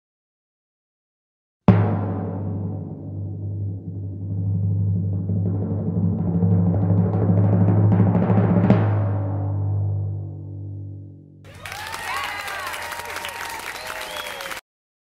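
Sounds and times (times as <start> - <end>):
timpani roll: 1.7 - 10.9.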